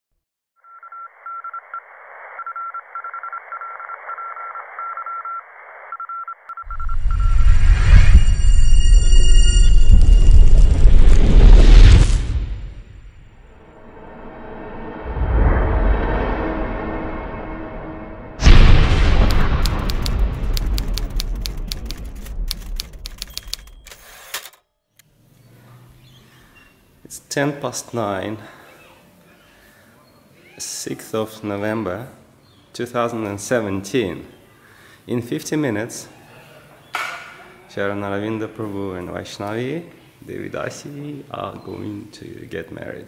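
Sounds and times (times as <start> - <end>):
morse code beeps: 0.6 - 10.5
low rumble: 6.7 - 22.7
typewriter key clacks: 19.6 - 24.0.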